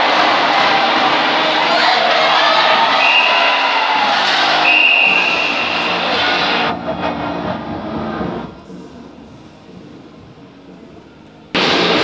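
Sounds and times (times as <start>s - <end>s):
arena crowd noise: 0.0s - 12.0s
music over public address: 0.0s - 12.0s.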